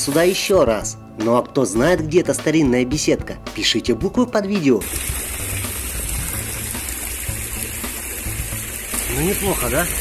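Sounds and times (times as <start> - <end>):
fountain water splashing into pool: 4.8 - 10.0.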